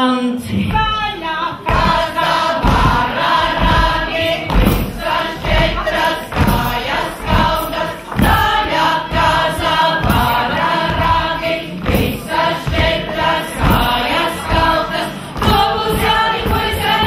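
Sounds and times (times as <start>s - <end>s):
group singing a folk song: 0.4s - 17.0s
low thuds beating: 0.6s - 17.0s.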